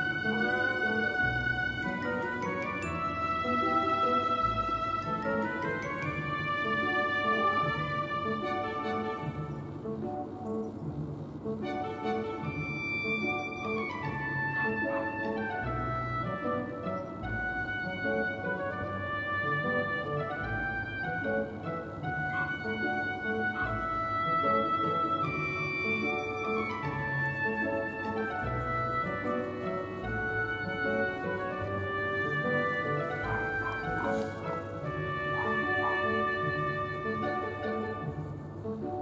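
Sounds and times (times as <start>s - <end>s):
instrumental strings and piano music: 0.0s - 39.0s.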